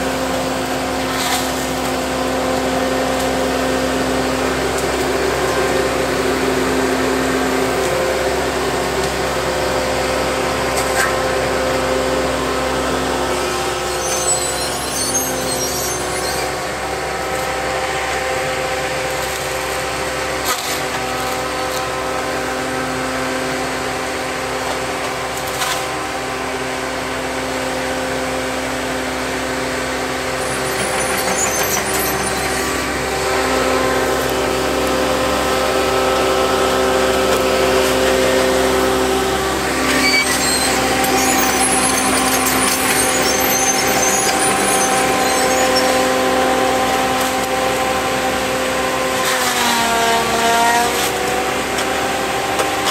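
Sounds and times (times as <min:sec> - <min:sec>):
diesel engine running: 0:00.0 - 0:52.9.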